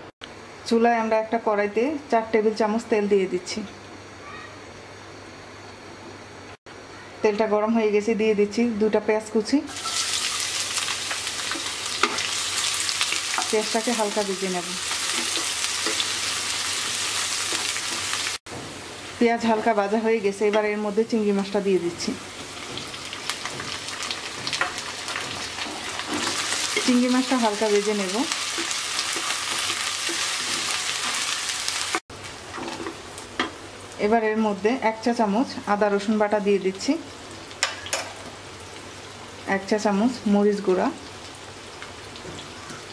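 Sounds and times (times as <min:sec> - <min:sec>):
onions sizzling in oil: 0:09.7 - 0:42.9
wooden spatula stirring in pan: 0:28.4 - 0:31.3.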